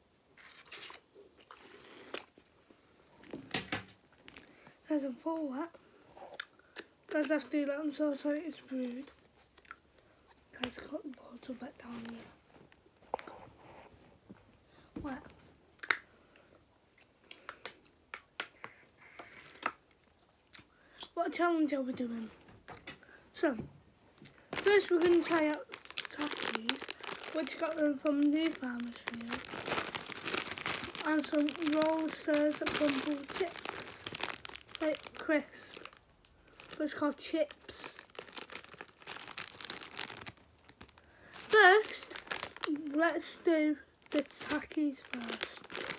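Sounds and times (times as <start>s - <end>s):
crisp packet crinkling torn open: 0.4s - 2.3s, 24.3s - 43.4s, 44.0s - 45.9s.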